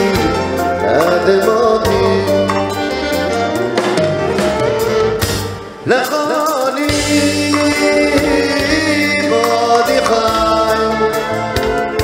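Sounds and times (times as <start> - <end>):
man singing ornamented vocals: 0.0 - 3.8, 5.8 - 11.6
orchestra with violin and drums: 0.0 - 12.0.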